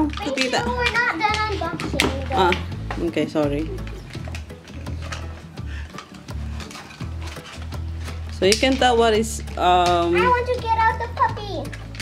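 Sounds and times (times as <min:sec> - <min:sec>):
background music: 0:00.0 - 0:12.0
plastic toy pieces rattling: 0:00.0 - 0:12.0.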